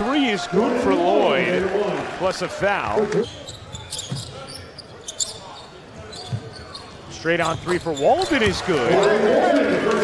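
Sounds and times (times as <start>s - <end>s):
arena crowd murmur: 0.0s - 7.3s, 8.3s - 10.0s
sneaker squeaks: 3.2s - 9.2s.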